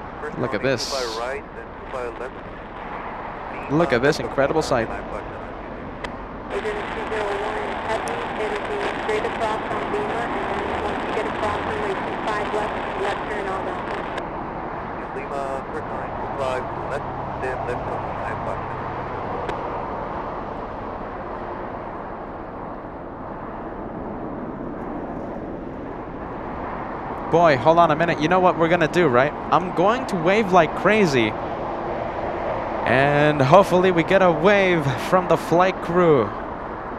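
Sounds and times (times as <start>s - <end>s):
indistinct voices talking: 0.0s - 2.5s, 3.5s - 5.9s, 6.5s - 14.2s, 15.0s - 18.8s, 27.2s - 31.4s, 32.8s - 36.4s
traffic background noise: 0.0s - 36.9s.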